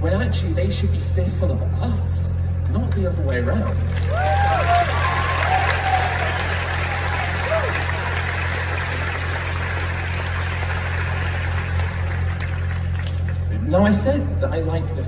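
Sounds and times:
low hum: 0.0s - 15.0s
audience applauding: 3.8s - 13.4s.

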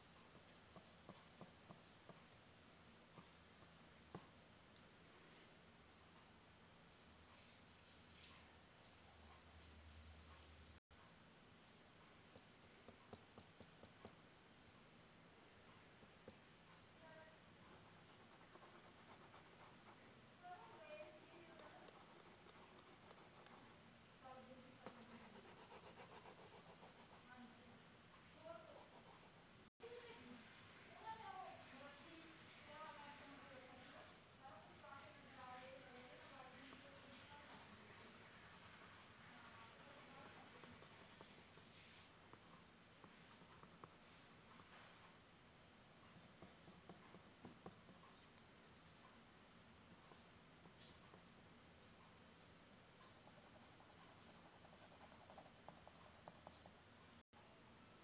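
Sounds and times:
pencil scratching on paper: 0.0s - 4.4s, 12.2s - 14.2s, 17.1s - 27.8s, 28.4s - 29.4s, 31.0s - 44.9s, 46.1s - 48.4s, 49.7s - 51.5s, 53.0s - 57.0s.

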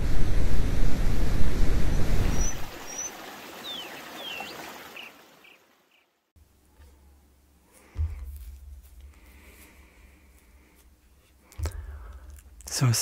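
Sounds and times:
bird chirps and calls: 2.3s - 6.0s.

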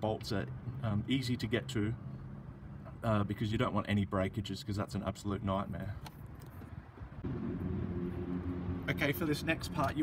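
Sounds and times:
low rumble: 7.1s - 9.3s.

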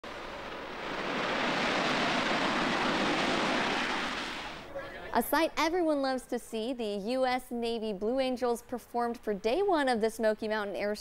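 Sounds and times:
jet engines roaring on takeoff: 0.0s - 4.7s.

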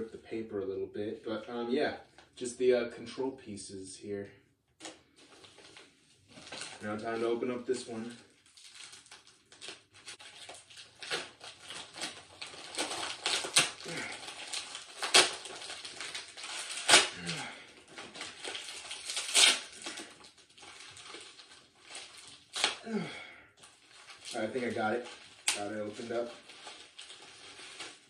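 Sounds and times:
plastic packaging crinkling: 4.8s - 28.0s.

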